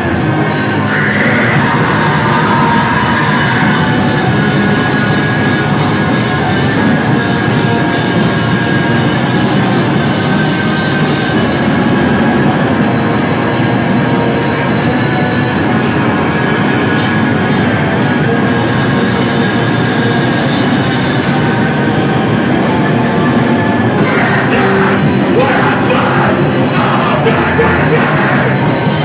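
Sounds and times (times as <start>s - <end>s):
distorted guitars and drums: 0.0s - 29.0s
shouted vocals: 0.8s - 4.2s, 24.0s - 29.0s.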